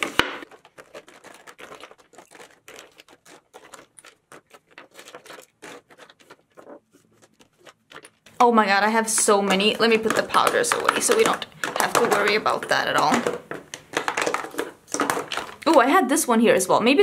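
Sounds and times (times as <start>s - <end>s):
bottles clicking on marble tabletop: 9.1s - 15.8s.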